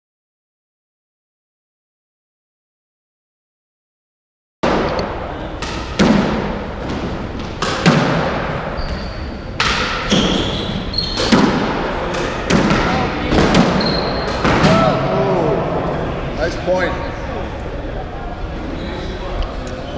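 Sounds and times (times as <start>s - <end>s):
squash ball impacts: 4.6s - 15.2s
shoes squeaking on wooden floor: 8.7s - 11.4s, 13.7s - 14.4s.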